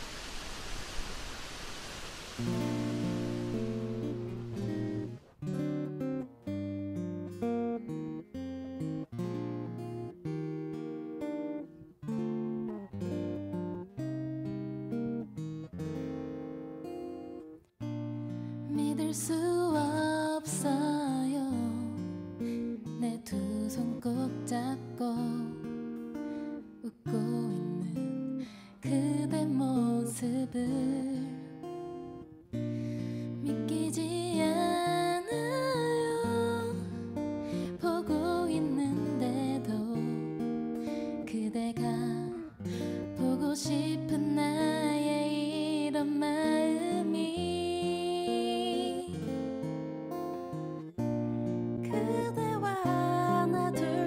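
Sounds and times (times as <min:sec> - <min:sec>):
acoustic guitar: 0:00.0 - 0:54.0
woman singing into microphone: 0:18.7 - 0:22.0, 0:22.8 - 0:25.7, 0:26.8 - 0:31.6, 0:33.4 - 0:40.4, 0:41.2 - 0:49.2, 0:51.8 - 0:54.0.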